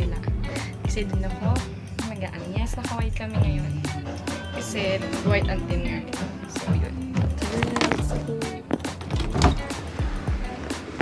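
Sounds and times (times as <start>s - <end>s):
background music with drum beat: 0.0s - 11.0s.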